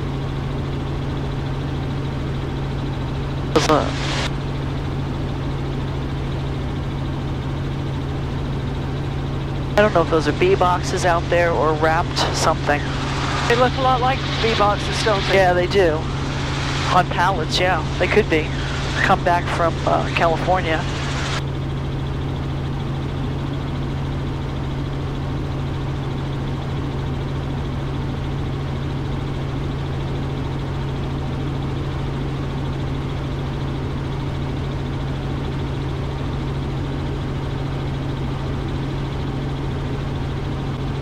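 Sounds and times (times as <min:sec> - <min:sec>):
helicopter engine and rotors droning: 0:00.0 - 0:41.0.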